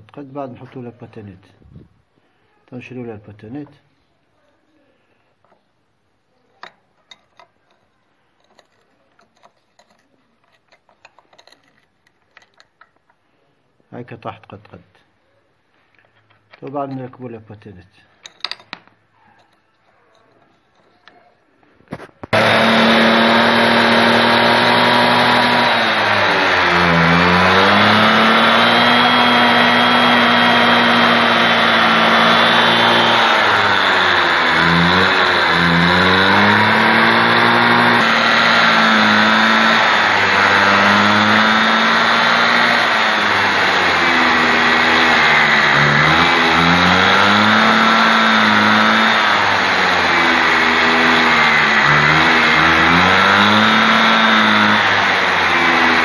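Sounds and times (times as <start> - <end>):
moped two-stroke engine running: 22.3 - 56.0.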